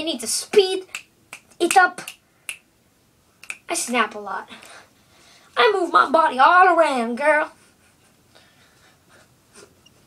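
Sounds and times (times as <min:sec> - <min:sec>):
person breathing: 0:04.5 - 0:05.6, 0:08.3 - 0:09.8.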